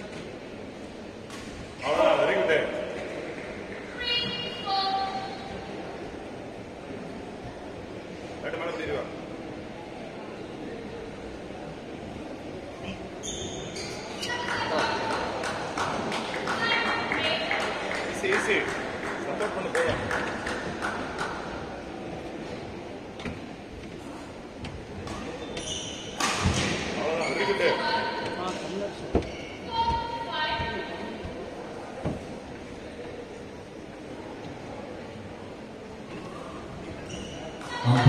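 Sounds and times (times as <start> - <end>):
shoes squeaking on court: 13.2 - 14.3, 25.0 - 27.7, 29.1 - 30.0, 37.0 - 37.8.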